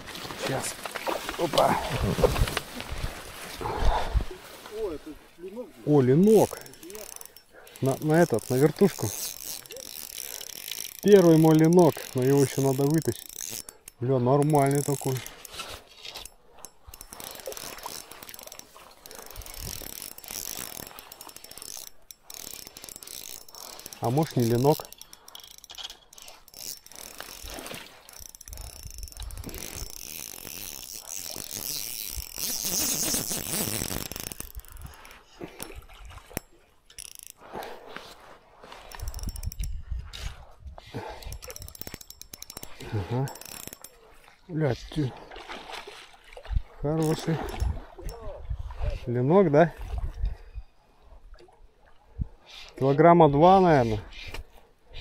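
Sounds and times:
fishing reel gears rattling: 0:06.0 - 0:37.7, 0:38.6 - 0:44.2, 0:47.0 - 0:48.3.

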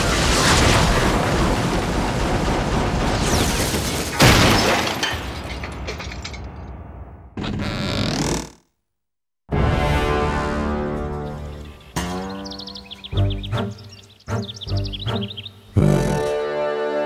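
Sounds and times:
sharp crash: 0:00.0 - 0:07.4.

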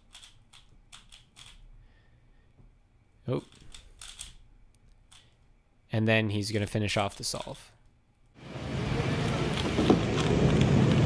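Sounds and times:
puzzle cube clicking: 0:00.0 - 0:01.6, 0:03.4 - 0:05.4.

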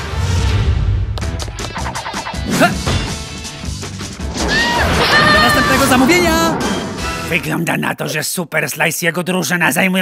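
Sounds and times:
upbeat cartoon action music: 0:00.0 - 0:07.6.

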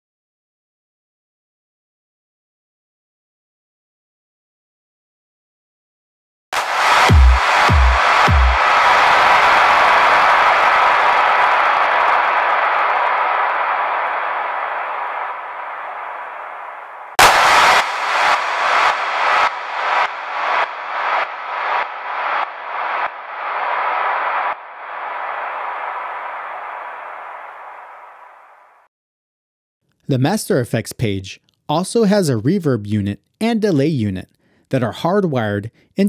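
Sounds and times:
noisy sustained drum sample: 0:06.6 - 0:08.7, 0:17.2 - 0:24.5
rhythmic drum pulses: 0:06.6 - 0:11.4, 0:17.2 - 0:25.7.

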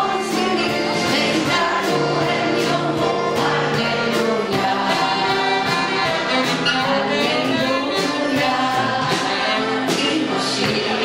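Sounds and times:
crowd singing in unison: 0:00.0 - 0:11.0
drums steady beat: 0:00.0 - 0:11.0
piano: 0:00.0 - 0:11.0.

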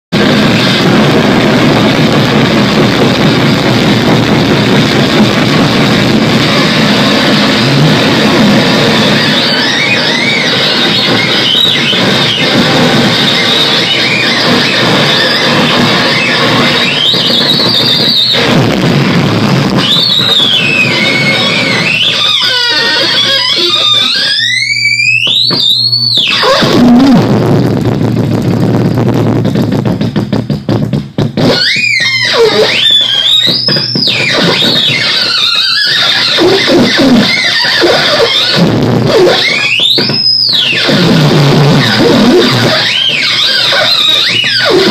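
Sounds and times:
climbing whine: 0:00.1 - 0:44.9
dense distorted noise: 0:00.1 - 0:44.9
squealing pitch sweeps: 0:06.5 - 0:18.5, 0:19.8 - 0:27.4, 0:31.4 - 0:44.9.

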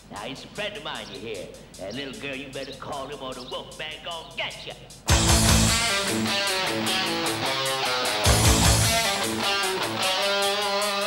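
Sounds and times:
steady drum beat: 0:00.0 - 0:11.0
bass guitar: 0:05.1 - 0:11.0
hard rock electric guitar: 0:05.1 - 0:11.0.

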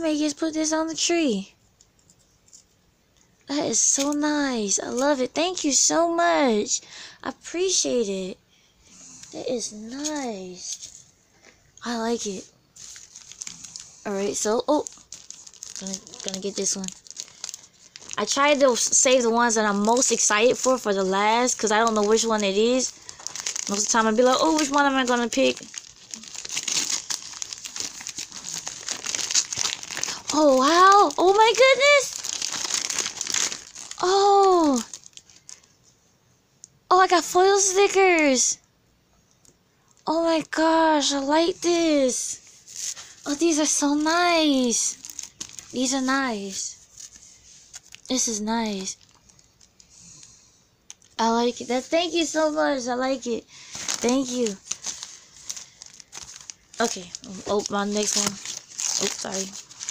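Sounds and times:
wrapping paper crinkling and tearing: 0:11.8 - 0:35.8, 0:40.2 - 0:50.2, 0:50.9 - 0:59.9.

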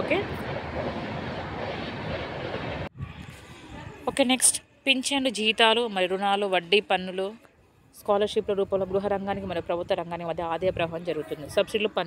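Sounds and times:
rushing noise with low rumble: 0:00.0 - 0:03.4.

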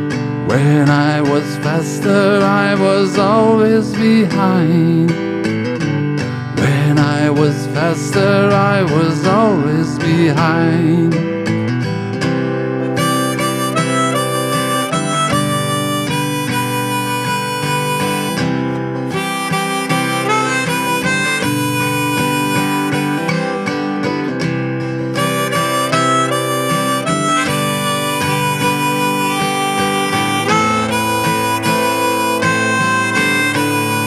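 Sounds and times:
acoustic guitar accompaniment: 0:00.0 - 0:34.0
harmonica solo: 0:12.8 - 0:34.0.

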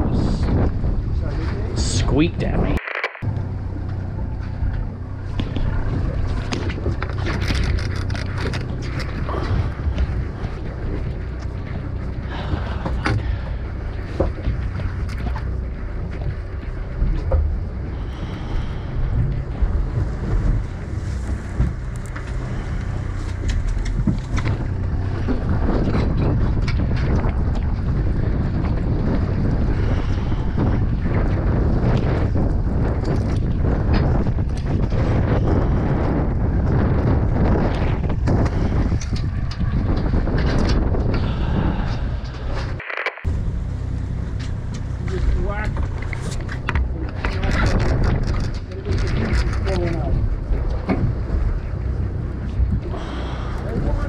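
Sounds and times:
sea and boat noise: 0:00.0 - 0:54.0
wind buffeting microphone: 0:00.0 - 0:54.0
sharp clicks: 0:02.8 - 0:03.3, 0:42.8 - 0:43.3.

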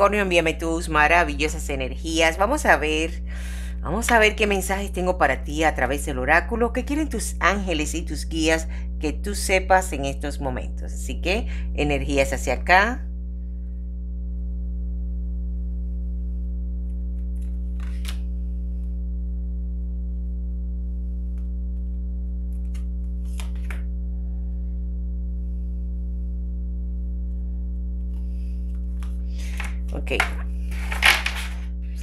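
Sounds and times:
steady low drone: 0:13.0 - 0:32.0
cards being shuffled: 0:17.2 - 0:18.3, 0:22.5 - 0:23.9, 0:28.1 - 0:31.7.

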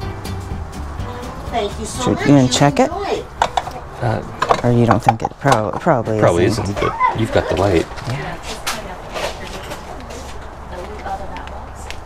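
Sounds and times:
indistinct background voices: 0:01.5 - 0:12.0.

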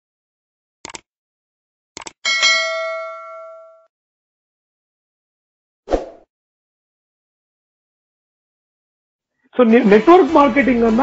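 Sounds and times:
bright bell ding: 0:02.2 - 0:03.9.

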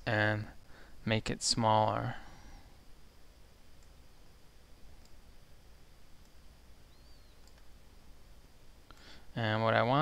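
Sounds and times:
low steady hum: 0:00.0 - 0:10.0
computer mouse clicks: 0:05.0 - 0:05.2, 0:07.3 - 0:07.7.

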